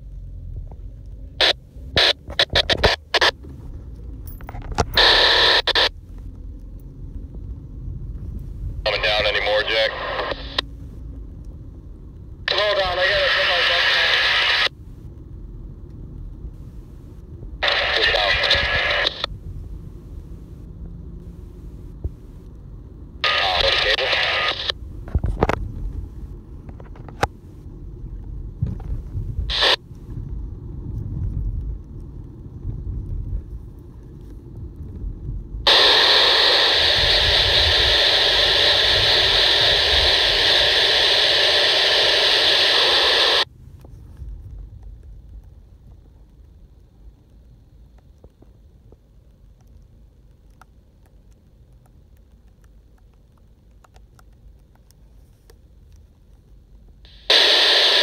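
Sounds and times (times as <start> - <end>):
low rumble: 0.0 - 42.2
loud static hiss: 1.3 - 3.4, 4.3 - 6.3, 8.4 - 11.0, 12.3 - 15.2, 16.2 - 27.8, 28.6 - 30.2, 35.6 - 43.5, 57.0 - 58.0
radio voice bursts: 5.0 - 5.9, 8.9 - 10.6, 12.5 - 14.7, 17.6 - 19.3, 23.2 - 24.8, 29.5 - 29.8, 35.7 - 43.4, 57.1 - 58.0.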